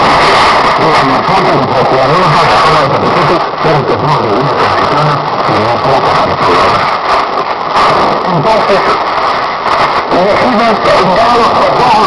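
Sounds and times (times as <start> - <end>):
radio hiss and static: 0.0 - 12.0
man talking over radio: 0.6 - 12.0.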